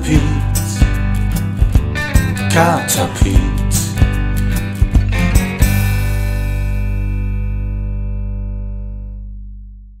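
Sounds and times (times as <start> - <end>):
drum hits: 0.8 - 6.4
band chord ringing out: 1.7 - 9.3.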